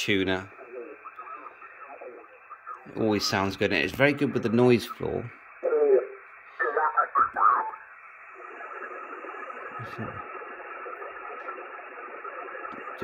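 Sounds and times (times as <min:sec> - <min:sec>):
radio band noise hiss: 0:00.0 - 0:13.0
radio voice: 0:00.0 - 0:13.0.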